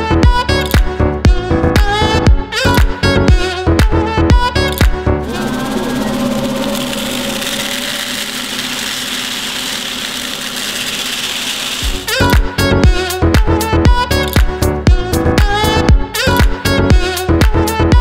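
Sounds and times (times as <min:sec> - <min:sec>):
music: 0:00.0 - 0:18.0
vacuum cleaner running: 0:05.2 - 0:12.4.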